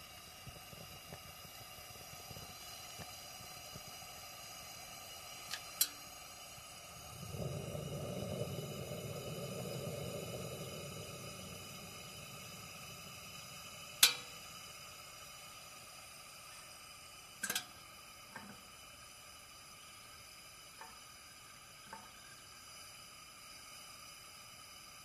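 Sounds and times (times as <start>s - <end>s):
lantern hissing: 0.0s - 25.0s
small tick: 5.5s - 6.0s, 14.0s - 14.3s, 17.4s - 18.7s, 20.8s - 21.1s, 21.8s - 22.3s
low rushing swell: 7.0s - 14.7s.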